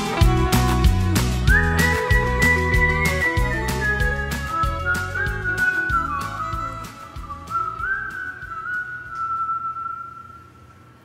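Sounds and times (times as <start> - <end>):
whistled melody: 0.0 - 10.8
faint musical accompaniment: 0.0 - 11.0.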